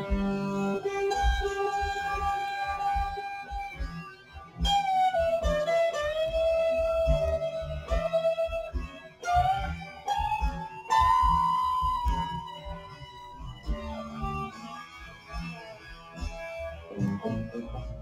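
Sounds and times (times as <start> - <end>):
drum and bass thumps: 0.0 - 4.0, 4.6 - 18.0
distorted electric guitar lead: 0.0 - 18.0.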